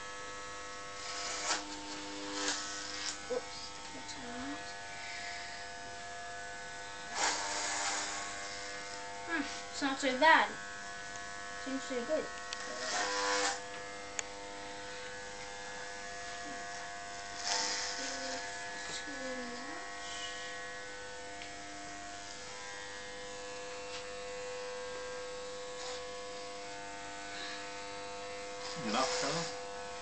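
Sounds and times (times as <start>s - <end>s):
electric hair clippers buzzing: 0.0s - 30.0s.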